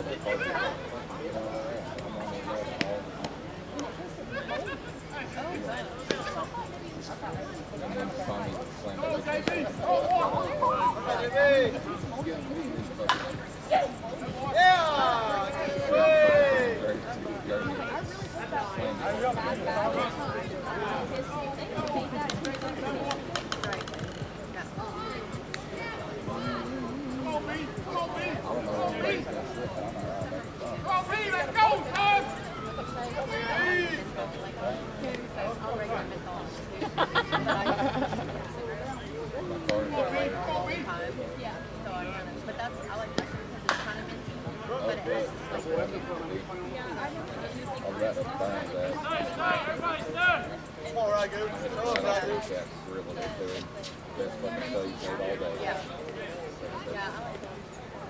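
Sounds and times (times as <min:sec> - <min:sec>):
players calling out: 0:00.0 - 0:41.1, 0:41.8 - 0:53.4
distant voices talking: 0:00.0 - 0:58.0.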